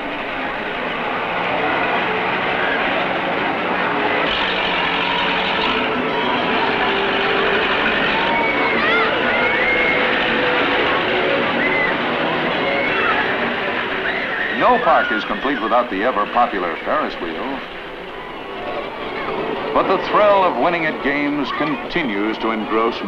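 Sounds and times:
crowd voices: 0.0s - 23.0s
rumble of ride machinery: 0.0s - 23.0s
high rising-and-falling cries: 0.6s - 22.8s.

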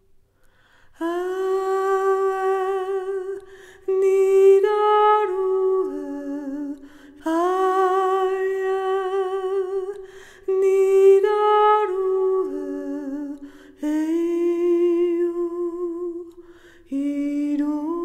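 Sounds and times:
singer breathing: 0.4s - 1.0s, 3.4s - 3.9s, 6.8s - 7.2s, 10.0s - 10.5s, 13.4s - 13.8s, 16.4s - 16.9s
woman singing wordless melody: 0.9s - 18.0s.

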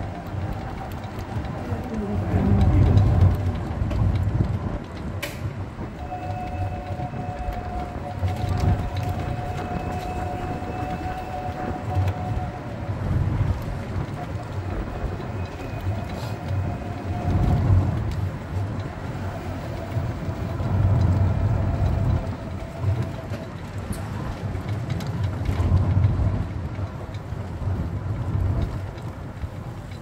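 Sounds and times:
cart rumbling and rattling: 0.0s - 30.0s.

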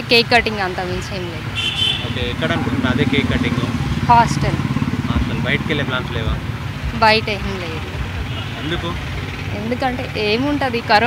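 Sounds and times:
street traffic: 0.0s - 11.0s
vehicle engine running: 0.0s - 11.0s
high-pitched horn toot: 1.6s - 2.4s.

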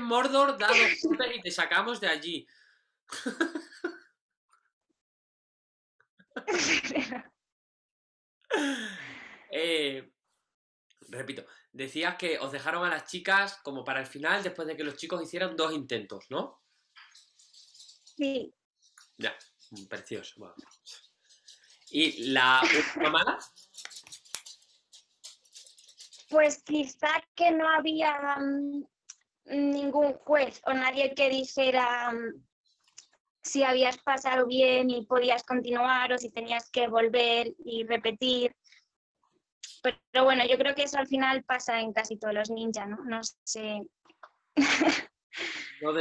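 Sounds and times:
person speaking: 0.0s - 2.4s, 11.1s - 16.5s, 17.1s - 28.7s
breathy vocal burst: 8.5s - 9.5s.

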